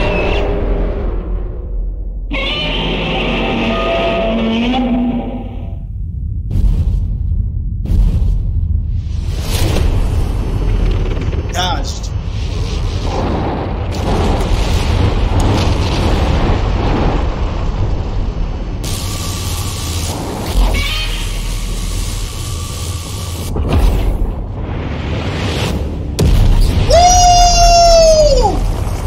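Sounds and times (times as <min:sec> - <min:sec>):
deep booms and explosions: 0:00.0 - 0:03.4, 0:05.4 - 0:22.5, 0:23.3 - 0:29.0
film soundtrack music: 0:00.0 - 0:17.2.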